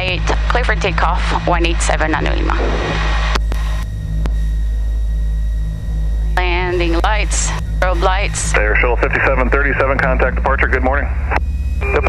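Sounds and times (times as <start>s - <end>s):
aircraft piston engines droning: 0.0s - 12.0s.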